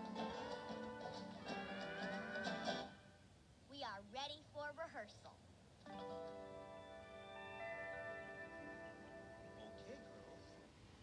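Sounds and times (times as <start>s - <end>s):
soft guitar music: 5.9s - 10.6s.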